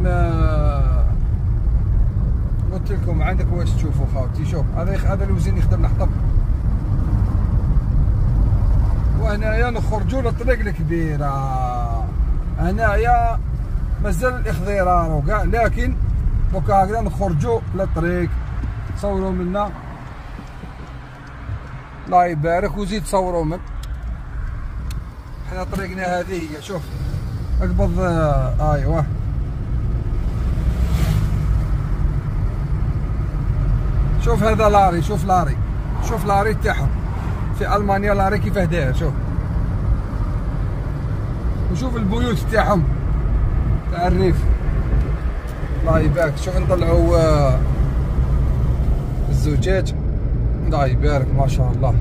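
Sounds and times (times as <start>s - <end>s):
car engine and road noise: 0.0s - 52.0s
passing vehicle whoosh: 15.1s - 41.7s, 42.4s - 52.0s.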